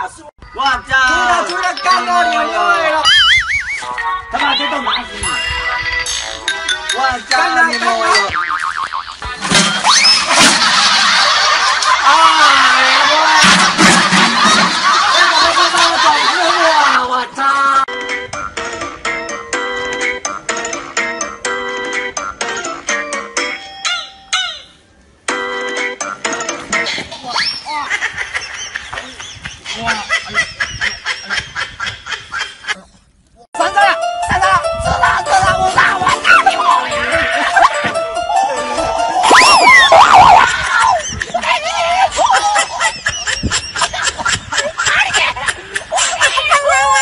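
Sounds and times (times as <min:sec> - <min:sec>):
laugh track: 0:06.3 - 0:17.3, 0:26.4 - 0:33.0, 0:33.6 - 0:47.0.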